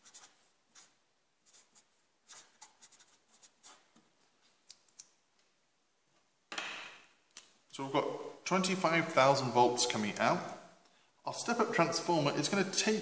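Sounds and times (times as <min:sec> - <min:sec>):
marker pen scratching on paper: 0:00.0 - 0:04.1.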